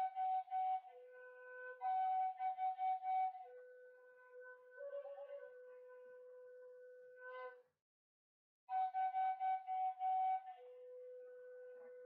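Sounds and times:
solo flute melody: 0.0 - 7.7, 8.7 - 12.0.

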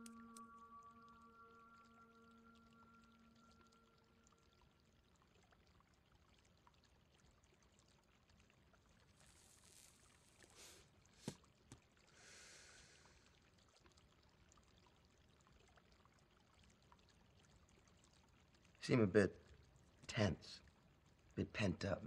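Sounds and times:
faint held chord: 0.0 - 4.4
soft hiss: 0.0 - 4.4, 9.1 - 13.3
faint scattered ticks: 0.0 - 21.4.

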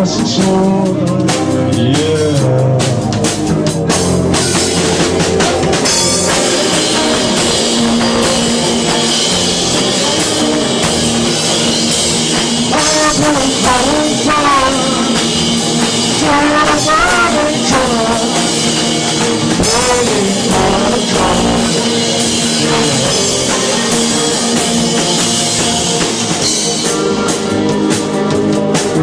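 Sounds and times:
person singing: 0.0 - 3.2, 12.7 - 15.4, 16.1 - 18.9, 19.5 - 25.4
rock band playing: 0.0 - 29.0
drum hits: 12.7 - 23.6.

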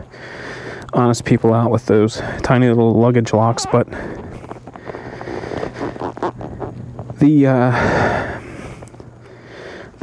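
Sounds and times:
faint rustles: 3.7 - 10.0.

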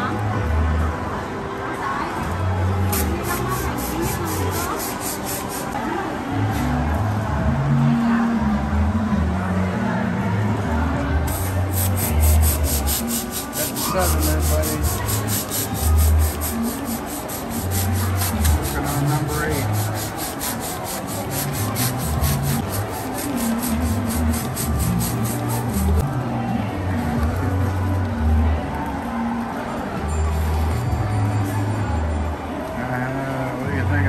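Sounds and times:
balloon pump hissing strokes: 11.3 - 26.0.

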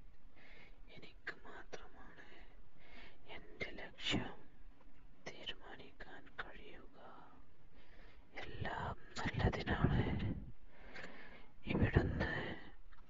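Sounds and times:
person whispering: 0.9 - 2.6, 3.3 - 4.5, 5.3 - 7.4, 8.3 - 10.5, 11.6 - 12.8.

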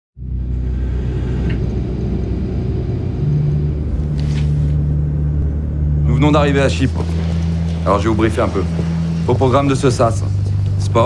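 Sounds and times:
airliner cabin rumble: 0.2 - 11.0
deep hum: 0.2 - 11.0.

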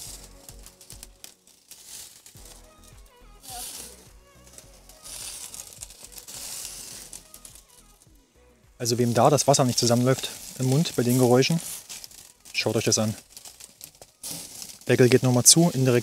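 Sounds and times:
burger patties sizzling on grill: 0.0 - 8.1, 8.7 - 16.0.

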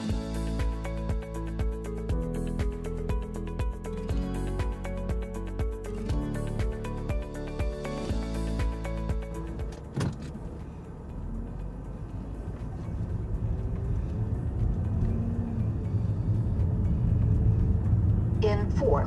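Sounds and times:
short music: 0.0 - 10.6
car driving rumble: 5.8 - 19.0.

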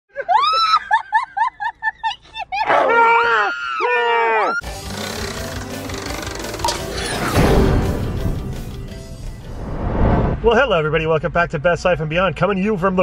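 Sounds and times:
intro music: 4.6 - 10.9.

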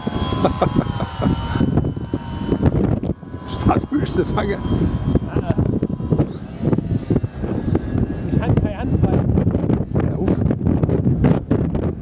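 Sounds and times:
high electric motor whine: 0.0 - 12.0
wind buffeting microphone: 0.0 - 12.0.

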